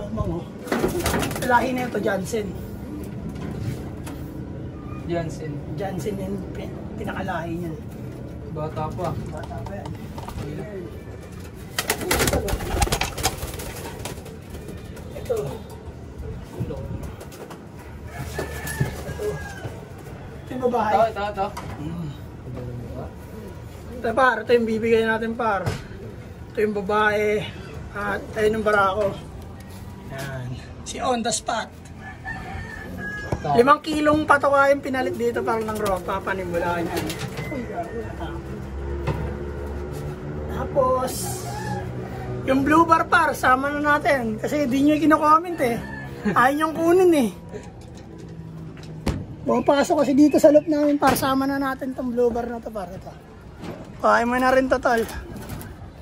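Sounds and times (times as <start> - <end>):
pigeon wings clattering: 0.6 - 1.7, 11.2 - 15.6.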